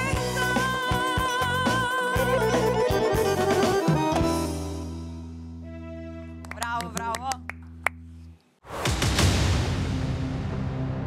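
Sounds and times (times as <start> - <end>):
sharp claps: 6.4 - 8.0
noisy rush of logo ident: 8.7 - 11.0.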